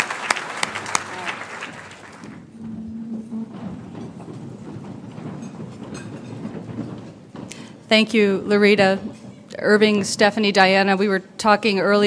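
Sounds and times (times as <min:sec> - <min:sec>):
audience applauding: 0:00.0 - 0:03.4.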